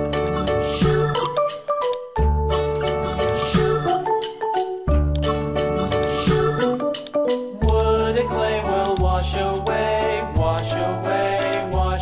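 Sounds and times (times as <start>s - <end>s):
instrumental children's song: 0.0s - 12.0s.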